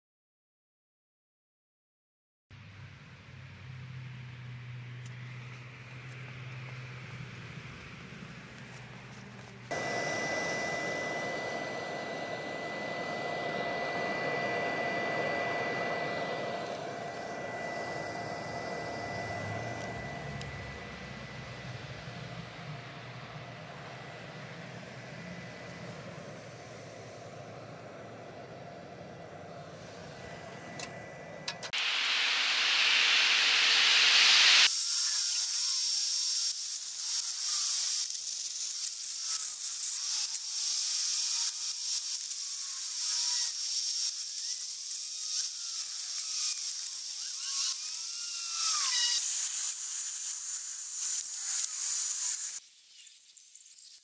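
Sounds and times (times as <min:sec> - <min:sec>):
steady hum with high whine: 0:07.3 - 0:34.7
welding arc crackling hiss: 0:31.5 - 0:54.0.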